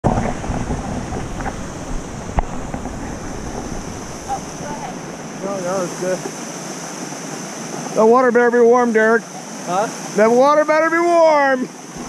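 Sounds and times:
wind buffeting microphone: 0.0s - 6.0s
falling water hiss: 0.0s - 12.0s.

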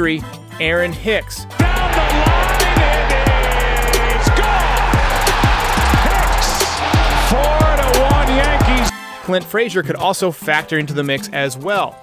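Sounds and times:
crowd cheering loudly: 1.5s - 8.9s
music with heavy kick drum: 1.6s - 8.9s.

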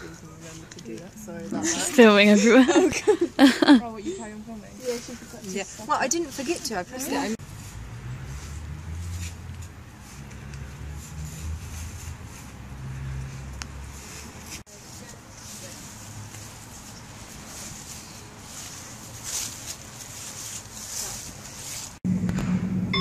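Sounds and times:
footsteps in dry leaves: 4.7s - 22.0s.

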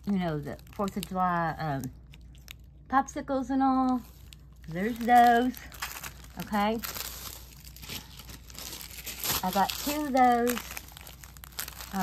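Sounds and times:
plastic packaging crinkling: 0.0s - 2.9s, 3.8s - 12.0s.

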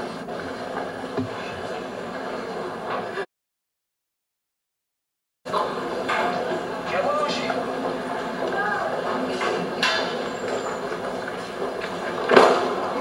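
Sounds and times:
audience murmur: 5.5s - 13.0s.

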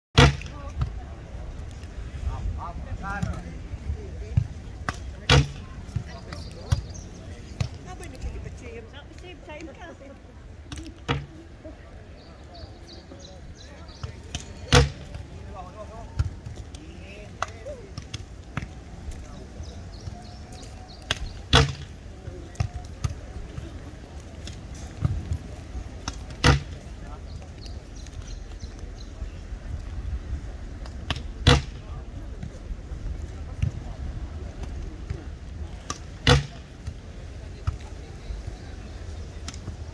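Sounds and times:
volleyball being struck: 0.2s - 0.5s, 4.8s - 6.1s, 14.3s - 15.2s, 21.1s - 21.9s, 26.1s - 26.8s, 31.1s - 31.8s, 35.9s - 36.6s
faint distant voices: 0.2s - 39.9s.

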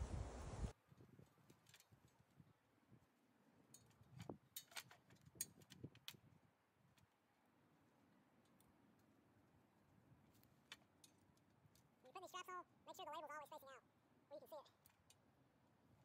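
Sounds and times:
faint clicks and knocks of straps: 0.8s - 12.0s, 14.7s - 15.4s.

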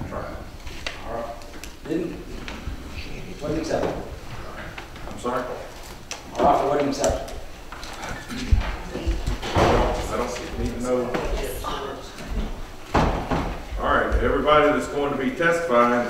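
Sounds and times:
people talking indistinctly: 0.0s - 12.8s.

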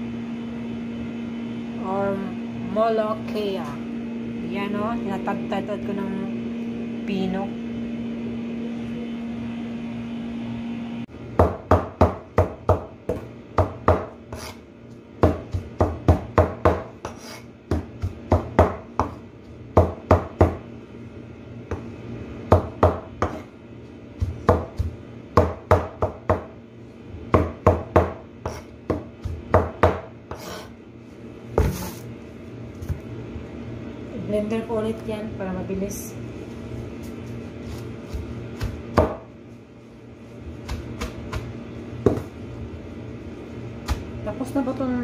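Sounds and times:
steady hum: 0.0s - 45.0s
knife chopping on cutting board: 11.4s - 14.6s, 15.2s - 19.2s, 22.5s - 23.5s, 24.2s - 26.5s, 27.3s - 30.7s, 31.6s - 32.0s, 37.6s - 39.3s, 40.6s - 42.3s.

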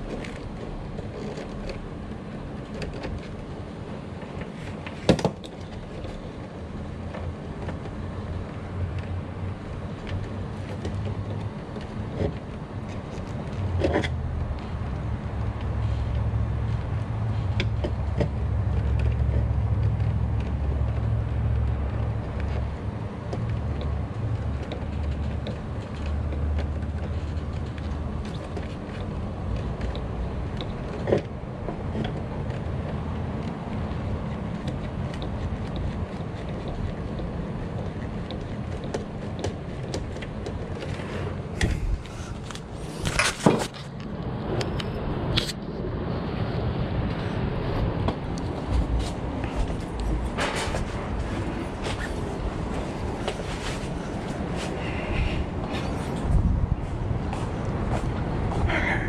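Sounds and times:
low background rumble: 44.1s - 59.0s.

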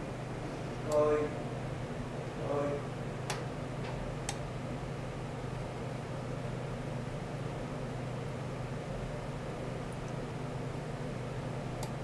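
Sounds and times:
low equipment hum: 0.0s - 12.0s.

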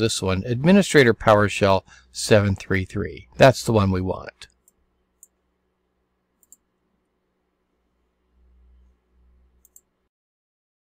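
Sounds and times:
computer mouse clicks: 6.4s - 6.7s, 9.6s - 9.9s.

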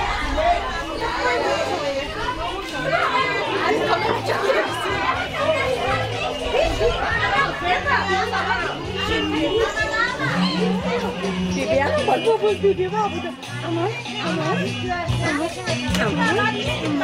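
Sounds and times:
many voices chattering: 0.0s - 17.0s.

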